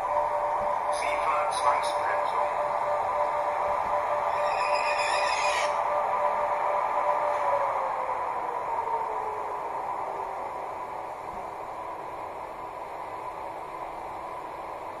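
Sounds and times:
model train electric driving whine: 0:00.0 - 0:15.0.

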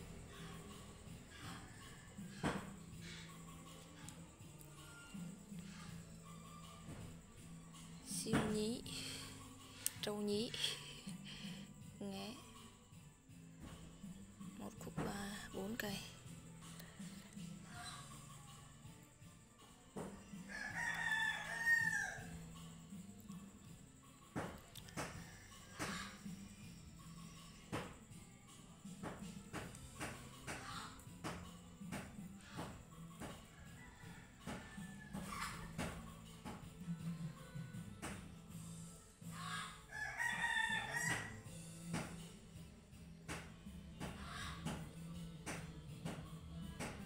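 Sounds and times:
rooster crowing: 0:20.2 - 0:22.4, 0:33.3 - 0:35.8, 0:39.4 - 0:41.6.

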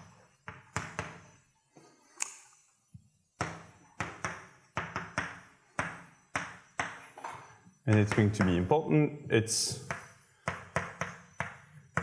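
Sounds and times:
chalk tapping on blackboard: 0:07.9 - 0:08.7, 0:09.7 - 0:12.0.

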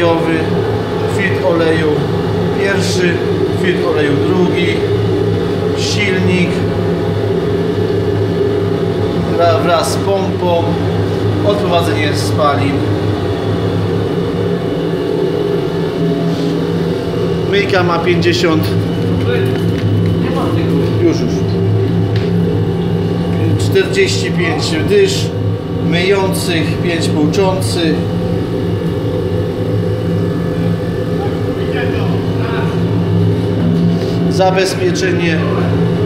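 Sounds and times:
industrial washer mechanical drone: 0:00.0 - 0:36.0
machine hum: 0:00.0 - 0:36.0.

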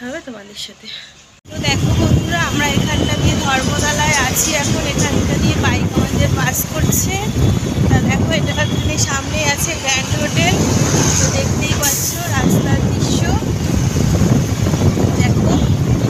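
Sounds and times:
people talking: 0:00.0 - 0:13.6, 0:15.1 - 0:16.0
road and traffic noise: 0:00.0 - 0:16.0
wind on microphone: 0:01.5 - 0:16.0.

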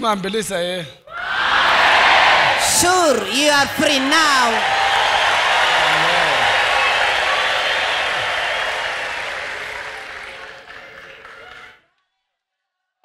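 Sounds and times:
shouted voices: 0:01.1 - 0:10.4
crowd applauding and cheering: 0:01.2 - 0:11.8.

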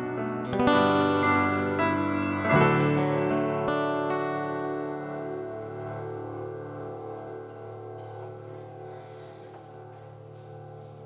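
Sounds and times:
acoustic guitar chord ringing: 0:00.0 - 0:11.0.

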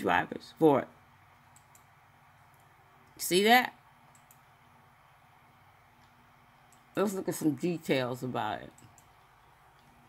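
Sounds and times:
low electrical hum: 0:00.0 - 0:10.0
computer mouse clicks: 0:01.5 - 0:01.9, 0:04.0 - 0:04.5, 0:06.0 - 0:07.0, 0:08.7 - 0:10.0.

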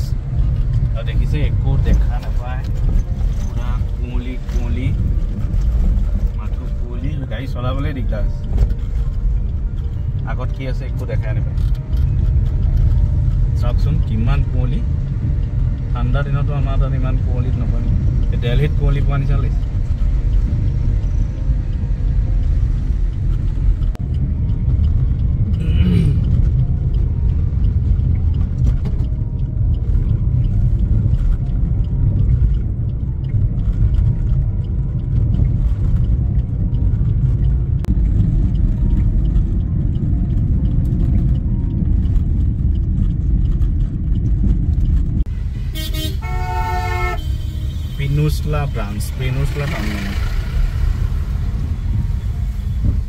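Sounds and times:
car interior engine rumble: 0:00.0 - 0:53.0
traffic: 0:00.0 - 0:53.0
car horn honking: 0:45.6 - 0:48.6.

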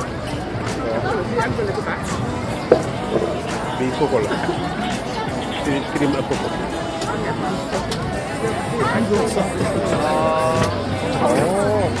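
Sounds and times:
crowd noise and overlapping voices: 0:00.0 - 0:12.0.

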